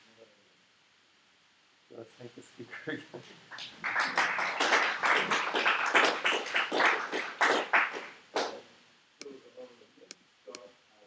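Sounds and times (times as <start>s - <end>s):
audience applause: 3.5s - 8.6s.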